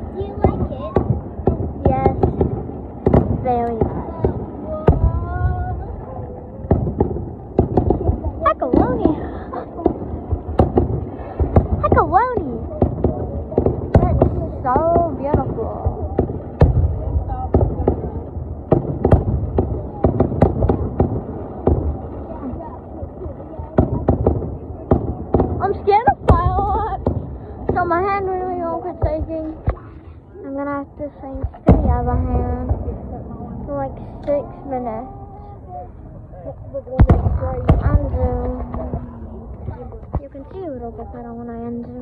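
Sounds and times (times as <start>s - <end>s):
fireworks popping and banging: 0.0s - 35.0s, 36.9s - 42.0s.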